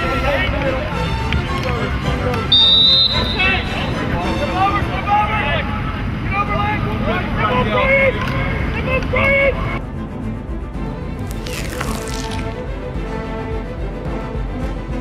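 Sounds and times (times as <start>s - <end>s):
whistle blast: 2.5s - 4.1s.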